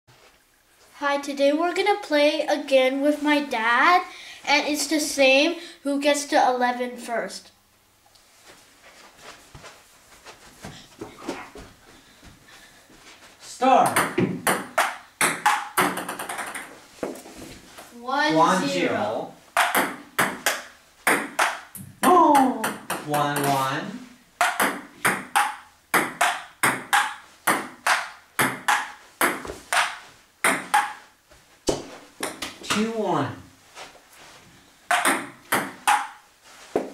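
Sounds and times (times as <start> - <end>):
soft knocks and shuffles: 8.2 - 13.6, 31.2 - 32.7, 33.6 - 34.7
ping pong ball clicking: 14.0 - 16.7, 19.6 - 21.6, 24.4 - 31.0, 34.9 - 36.2.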